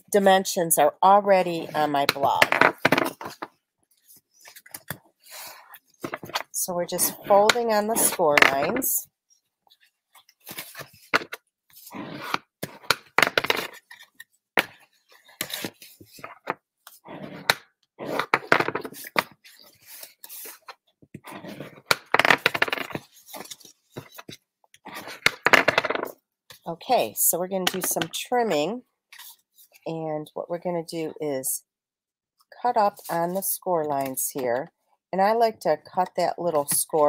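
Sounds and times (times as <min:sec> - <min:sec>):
cardstock folding and crackling: 0:09.8 - 0:16.6, 0:21.4 - 0:26.1.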